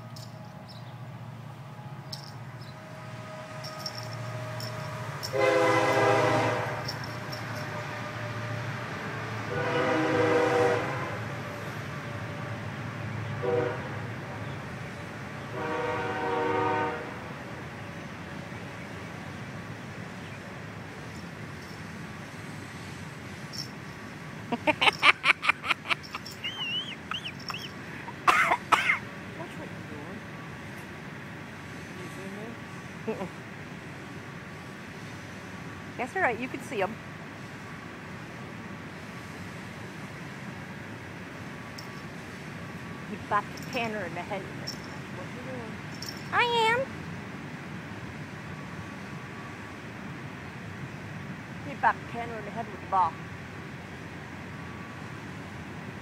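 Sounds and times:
train horn blasts: 2.6s - 14.4s, 15.4s - 17.4s
bird chirping: 26.0s - 27.8s
raspy coughs: 28.1s - 29.0s.

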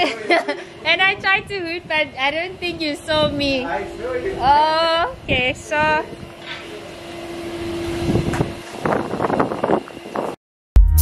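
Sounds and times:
wind gusting on microphone: 0.8s - 10.4s.

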